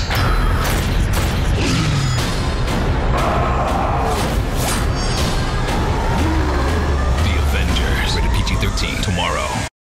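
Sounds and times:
trailer music: 0.0s - 9.7s
monster roaring: 5.7s - 7.1s.

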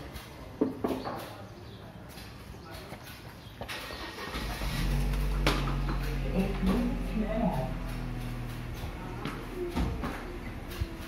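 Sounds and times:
vehicle engine running: 3.7s - 11.0s.

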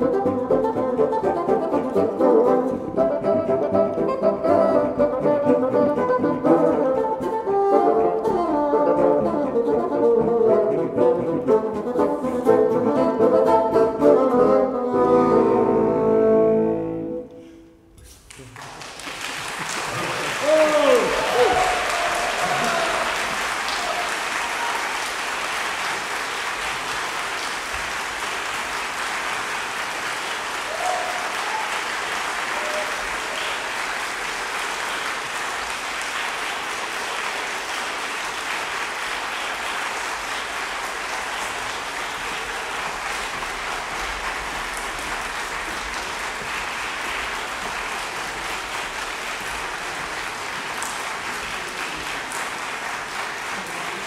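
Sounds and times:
audience applauding: 18.2s - 54.0s.

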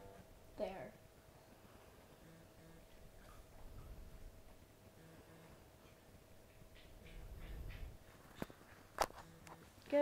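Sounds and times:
faint scattered noise: 0.0s - 10.0s.

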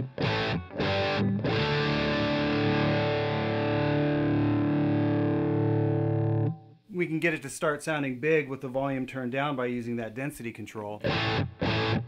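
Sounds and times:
distorted electric guitar chords: 0.0s - 6.8s, 11.0s - 12.0s.

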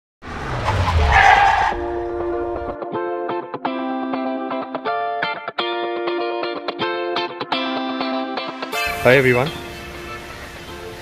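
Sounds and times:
car engine rumble: 0.2s - 2.8s
tyre screech: 0.3s - 2.6s
music with steady pitched notes: 2.4s - 11.0s.

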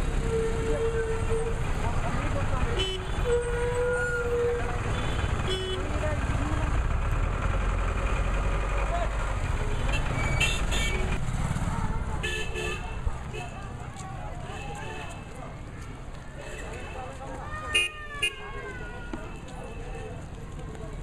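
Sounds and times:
vehicle engines rumbling: 0.0s - 21.0s
crowd voices: 11.0s - 21.0s.

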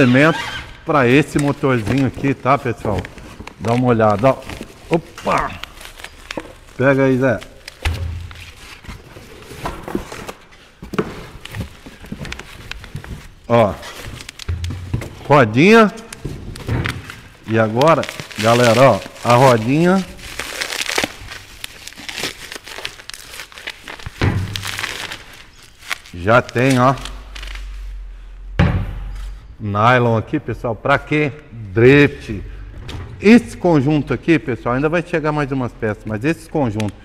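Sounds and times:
cardboard box and plastic rustling: 1.2s - 27.9s.

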